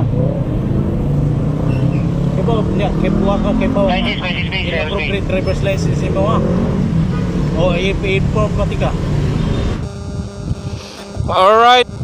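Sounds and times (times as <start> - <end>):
street traffic noise: 0.0 - 10.4
steady hum with sustained tones: 9.8 - 12.0.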